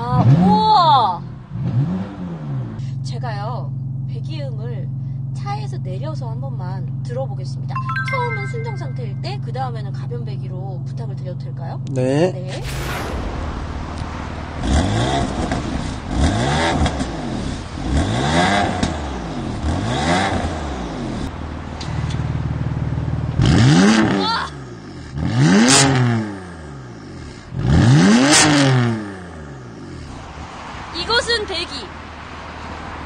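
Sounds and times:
car engine revving: 1.2 - 2.8, 12.6 - 33.0.

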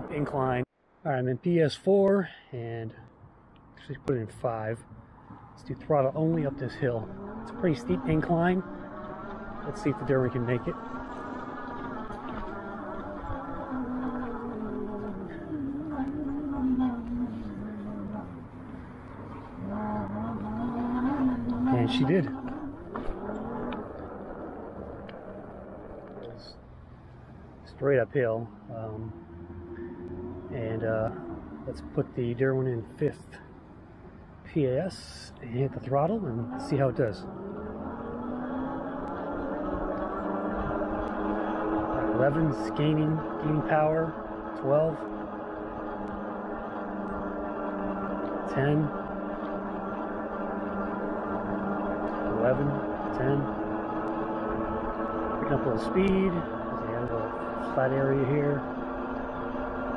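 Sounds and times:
electric motor whining: 5.9 - 26.6, 35.5 - 59.9.

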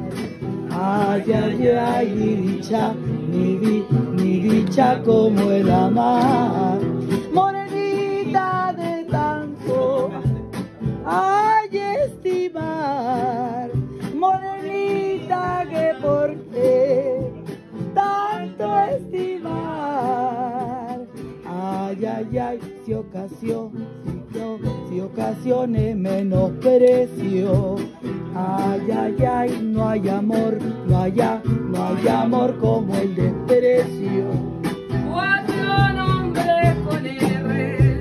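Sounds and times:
person singing with vibrato: 0.0 - 10.4, 11.0 - 17.4, 18.0 - 38.0
acoustic guitars strummed and plucked: 0.0 - 38.0.

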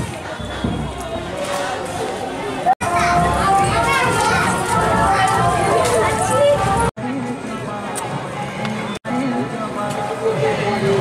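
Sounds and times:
people and children talking: 0.0 - 9.2.

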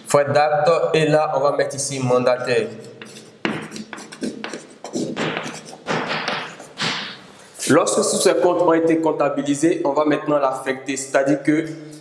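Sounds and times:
chalk scratching on blackboard: 2.6 - 7.1
chalk tapping on board: 2.6 - 7.2.

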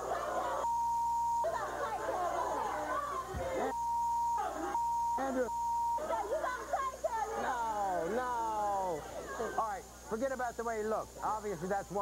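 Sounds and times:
censor bleep tone: 0.6 - 1.6, 3.7 - 6.1.

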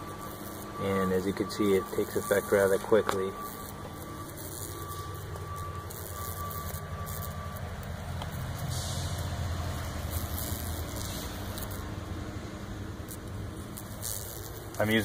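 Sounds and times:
low hum and rumble: 0.0 - 15.0
brief hiss: 8.6 - 9.3.

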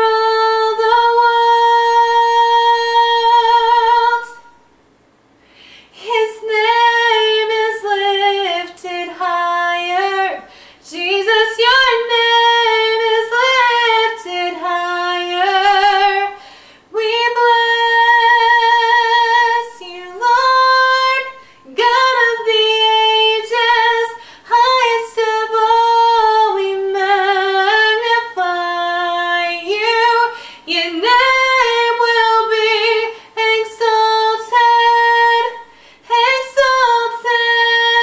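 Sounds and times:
woman singing a cappella: 0.0 - 4.7, 5.9 - 38.0.

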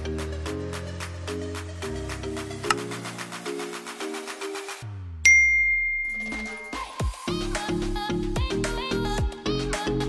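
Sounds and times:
background music: 0.0 - 5.3, 6.2 - 10.0
bright bell ding: 5.3 - 7.2.

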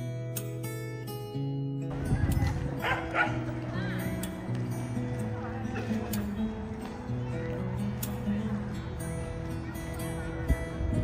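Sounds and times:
outdoor crowd ambience: 0.0 - 11.0
background music: 0.3 - 11.0
dog barking: 2.8 - 3.5.

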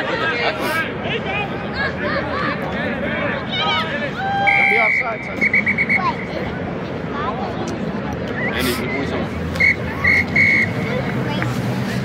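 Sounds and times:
crowd chatter: 0.0 - 12.0
referee's whistle blasts: 4.4 - 6.2, 9.6 - 10.8.

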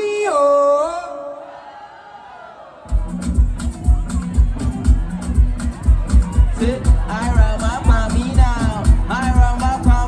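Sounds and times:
dance track with heavy bass drum: 2.9 - 10.0.

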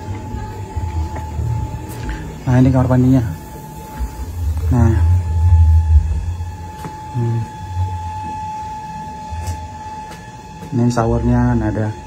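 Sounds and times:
thin steady high tone: 0.0 - 12.0.

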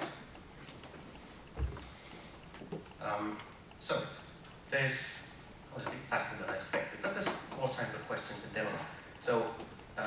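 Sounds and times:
soft low thump: 1.6 - 1.9.

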